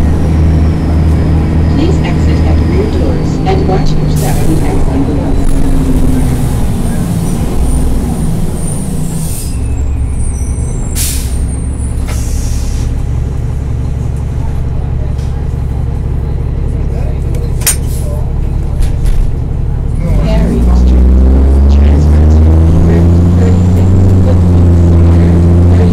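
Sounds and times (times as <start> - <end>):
bus diesel engine: 0.0 - 25.9
brake squeal: 5.9 - 13.0
air brake hisses: 11.0 - 11.4, 12.0 - 12.9.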